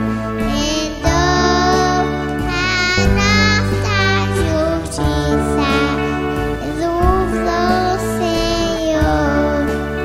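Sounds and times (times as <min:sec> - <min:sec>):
child singing a hymn: 0:00.0 - 0:10.0
instrumental accompaniment: 0:00.0 - 0:10.0.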